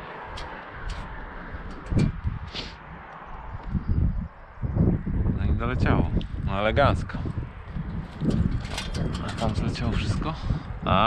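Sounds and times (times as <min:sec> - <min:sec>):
wind rumble on microphone: 0:00.0 - 0:11.0
water trickling along metal gutter: 0:00.1 - 0:02.2, 0:07.9 - 0:10.0.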